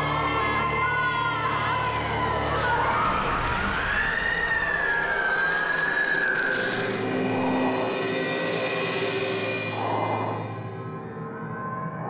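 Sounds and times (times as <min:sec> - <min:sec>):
dense hiss: 0:05.1 - 0:07.3.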